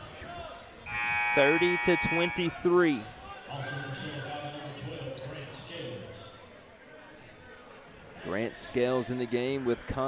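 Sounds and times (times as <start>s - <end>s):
voices echoing: 0.1s - 7.3s.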